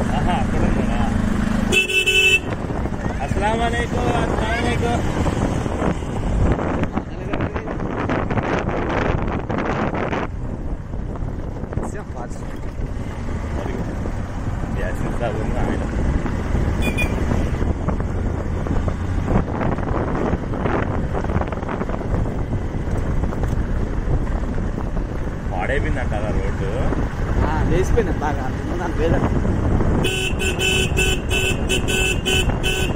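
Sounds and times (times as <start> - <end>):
motorcycle engine: 0.0 - 32.9
wind buffeting microphone: 2.3 - 32.9.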